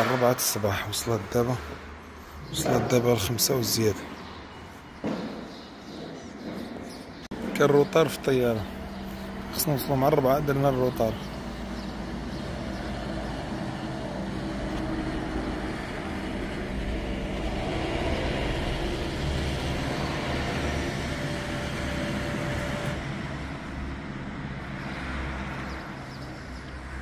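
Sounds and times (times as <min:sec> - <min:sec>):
traffic rumble: 0:00.0 - 0:27.0
car engine running: 0:07.8 - 0:23.7.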